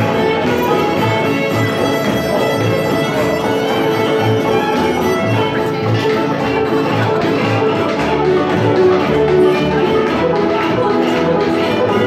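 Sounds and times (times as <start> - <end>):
bluegrass string band playing: 0.0 - 12.0
fiddle: 0.0 - 12.0
plucked double bass: 0.0 - 12.0.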